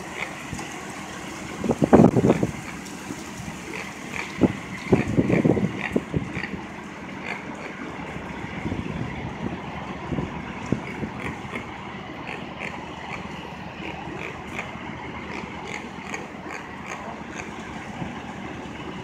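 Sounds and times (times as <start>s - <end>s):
city street noise: 0.0s - 19.0s
vehicle engine rumble: 0.0s - 19.0s.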